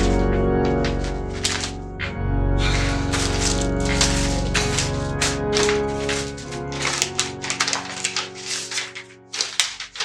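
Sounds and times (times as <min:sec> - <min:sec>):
background music: 0:00.0 - 0:10.0
paper envelopes rustling: 0:00.0 - 0:10.0.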